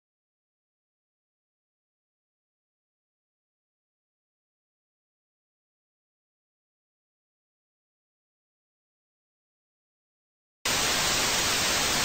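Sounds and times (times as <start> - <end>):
tv static hiss: 10.7 - 12.0.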